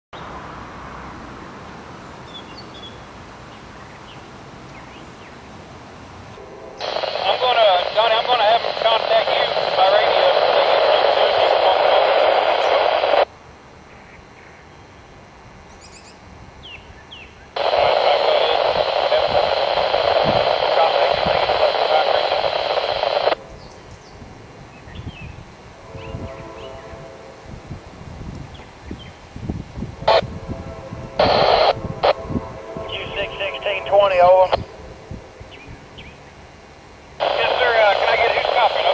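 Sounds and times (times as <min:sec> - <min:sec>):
garbled radio voices: 0:06.8 - 0:13.2, 0:17.6 - 0:23.4, 0:31.2 - 0:32.2, 0:32.8 - 0:34.6, 0:37.2 - 0:38.9
radio transmitter keying: 0:06.8 - 0:13.2, 0:17.6 - 0:23.4, 0:37.2 - 0:38.9.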